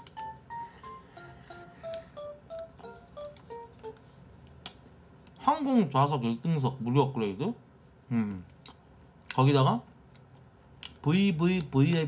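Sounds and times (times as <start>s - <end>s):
beep-like melody: 0.0s - 3.9s.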